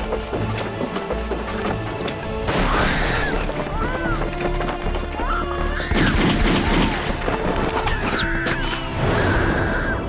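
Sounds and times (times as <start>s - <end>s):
dramatic orchestral film score: 0.0s - 10.0s.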